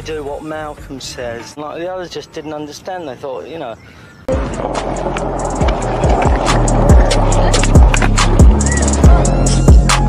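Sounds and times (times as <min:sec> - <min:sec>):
skateboard wheels rolling on pavement: 0:04.3 - 0:09.9
music with deep kick drum and bass: 0:04.3 - 0:10.0.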